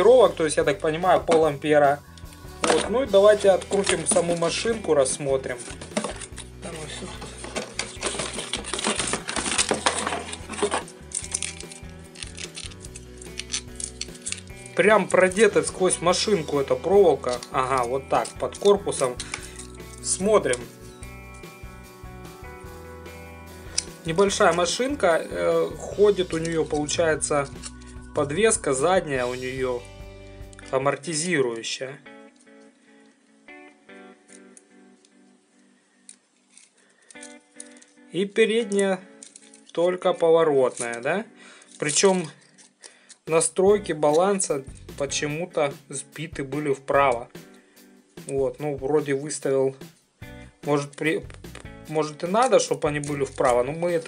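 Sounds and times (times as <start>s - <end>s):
background music: 0.0s - 54.0s
cardboard packaging rustling: 2.6s - 15.1s.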